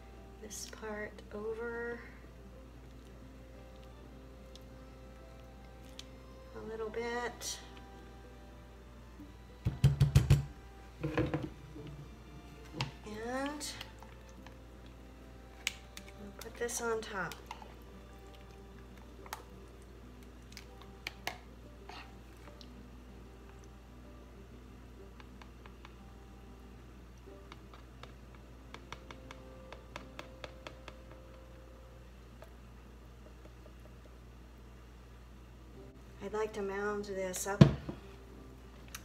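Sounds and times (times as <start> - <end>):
faint background music: 0.0 - 39.0.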